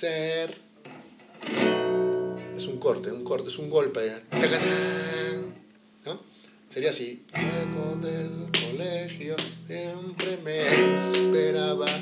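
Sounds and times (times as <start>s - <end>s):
acoustic guitar chord strum: 0.9s - 3.6s, 4.3s - 5.6s, 7.4s - 12.0s.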